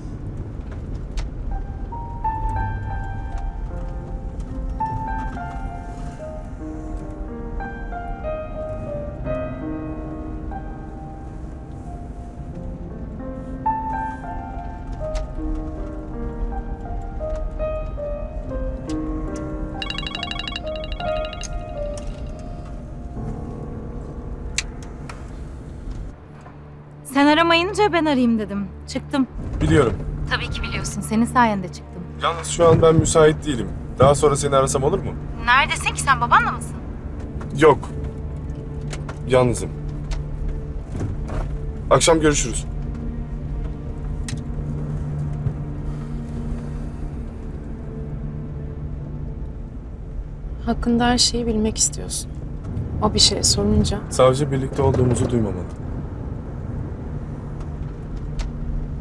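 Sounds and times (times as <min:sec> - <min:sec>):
engine and road rumble in car: 0:00.0 - 0:19.8, 0:22.3 - 0:26.4, 0:32.6 - 0:59.0
music of sustained notes: 0:00.0 - 0:54.7
electronic ringtone trill: 0:19.8 - 0:22.3.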